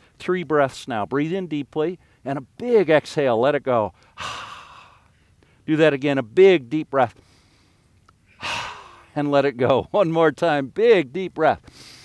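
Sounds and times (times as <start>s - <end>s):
person breathing in deeply: 4.0s - 5.6s, 7.2s - 9.1s.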